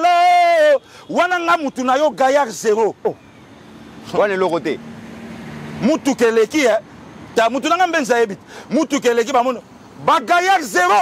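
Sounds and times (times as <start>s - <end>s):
man speaking: 0.0s - 3.2s, 4.0s - 4.8s, 5.8s - 11.0s
vehicle engine hum: 2.1s - 11.0s.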